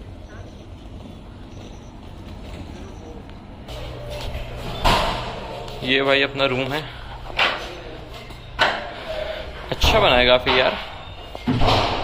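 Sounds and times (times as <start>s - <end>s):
low indoor hum: 0.0s - 12.0s.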